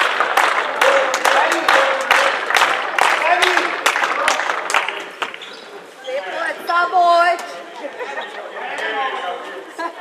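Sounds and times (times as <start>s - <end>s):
men shouting in echoing hall: 0.8s - 2.4s.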